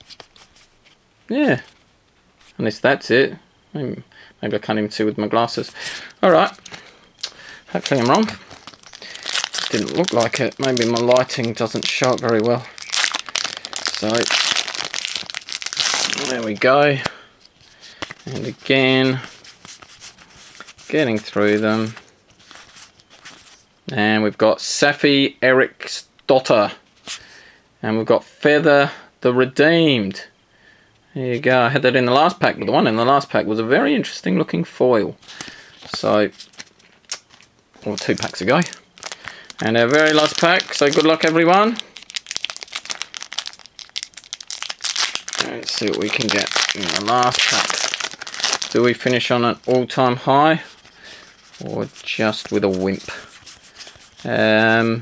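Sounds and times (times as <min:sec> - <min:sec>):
foil wrapper crinkling: 0:05.8 - 0:23.6, 0:35.3 - 0:49.9, 0:50.6 - 0:55.0.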